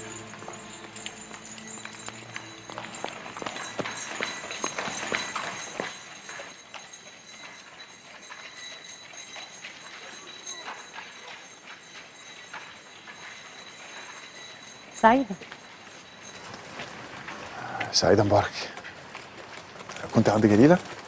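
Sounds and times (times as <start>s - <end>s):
hard-soled footsteps on pavement: 0.0s - 21.0s.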